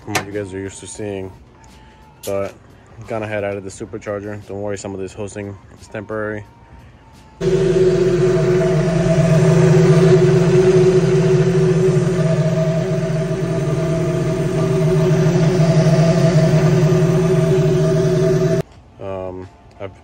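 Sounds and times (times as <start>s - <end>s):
supercharged car engine idling: 7.4s - 18.6s.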